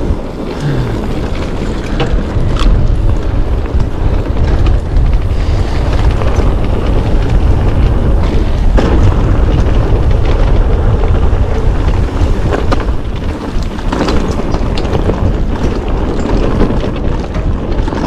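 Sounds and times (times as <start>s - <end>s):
bike rattling and knocking: 0.0s - 18.0s
wind buffeting microphone: 0.0s - 18.0s.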